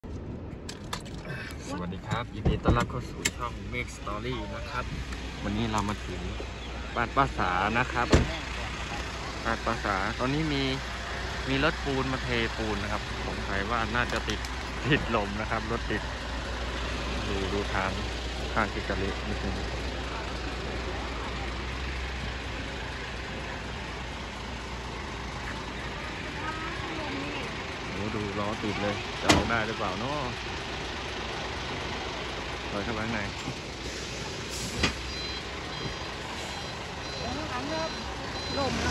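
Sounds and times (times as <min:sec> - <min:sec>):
diesel engine idling: 0:00.7 - 0:38.9.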